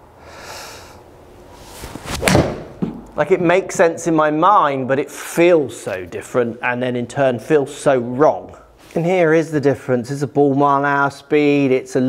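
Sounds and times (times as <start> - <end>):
breath out through the nose: 0.2 - 1.0.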